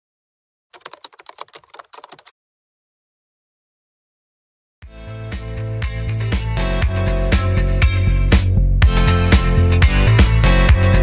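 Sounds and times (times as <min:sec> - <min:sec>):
keyboard key clicks: 0:00.8 - 0:02.3.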